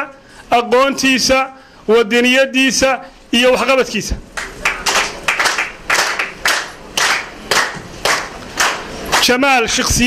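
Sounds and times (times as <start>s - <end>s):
audience clapping in unison: 4.3s - 9.4s.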